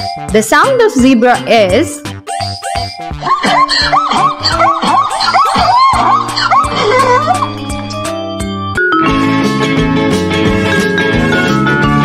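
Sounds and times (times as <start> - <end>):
children's music with a steady beat: 0.0 - 12.0.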